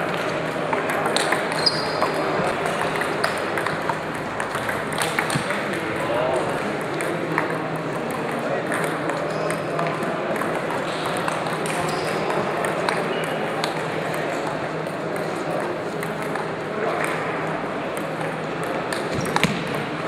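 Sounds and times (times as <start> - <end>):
background talk: 0.0 - 20.0
table tennis balls clicking: 0.2 - 17.2, 17.9 - 20.0.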